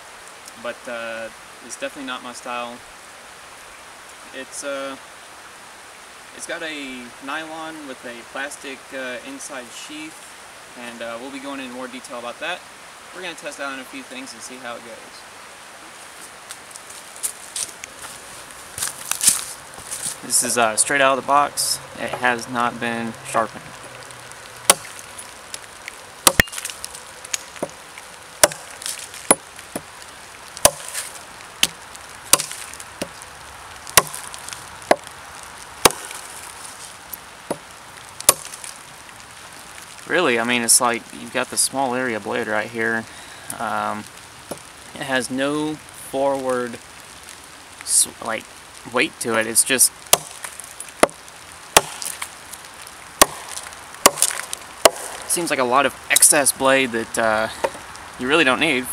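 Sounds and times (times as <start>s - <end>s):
blade chopping into log: 24.7s - 25.0s, 26.3s - 26.7s, 28.4s - 28.7s, 30.6s - 33.2s, 34.0s - 34.3s, 35.8s - 36.2s, 38.3s - 38.6s, 50.1s - 51.2s, 51.8s - 52.2s, 53.2s - 55.3s.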